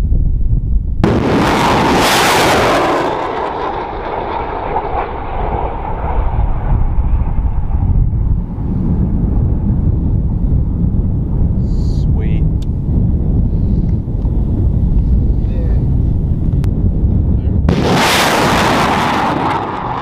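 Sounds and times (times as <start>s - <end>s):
wind rumble on microphone: 0.0s - 20.0s
rocket motor roar: 1.0s - 9.4s, 17.7s - 20.0s.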